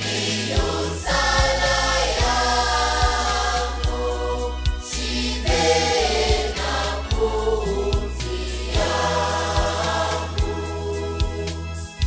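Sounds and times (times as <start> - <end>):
choir singing church song: 0.0 - 12.0
electronic organ: 0.0 - 12.0.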